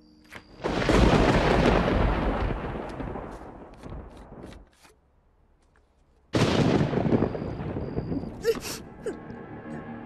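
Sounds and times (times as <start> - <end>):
thunder crack and rumble: 0.6 - 4.4, 6.4 - 8.5.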